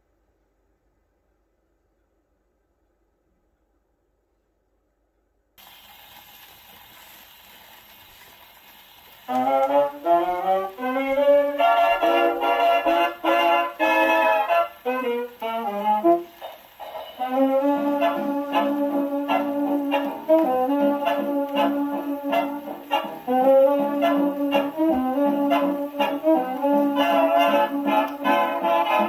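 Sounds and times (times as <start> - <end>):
record surface hiss: 0.0 - 29.0
dance band brass and saxophones: 9.3 - 29.0.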